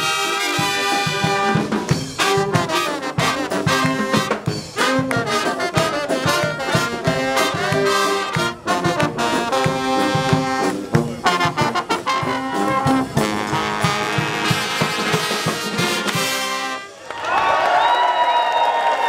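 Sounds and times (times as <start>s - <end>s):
drum beat: 0.0s - 16.6s
brass band playing: 0.0s - 17.0s
voices shouting and cheering: 17.0s - 19.0s.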